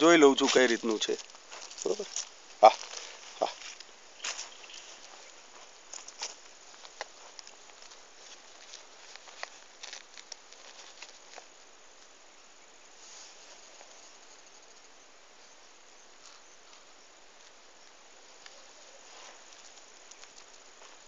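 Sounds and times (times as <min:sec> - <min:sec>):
field insects chirring: 0:00.0 - 0:21.0.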